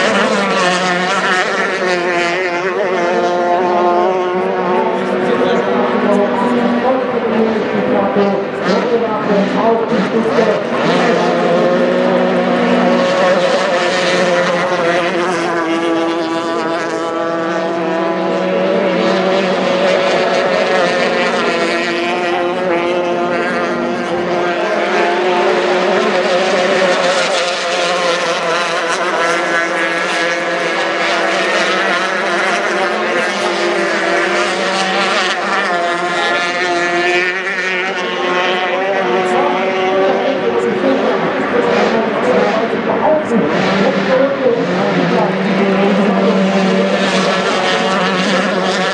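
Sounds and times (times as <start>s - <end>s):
outboard engines whining: 0.0s - 48.9s.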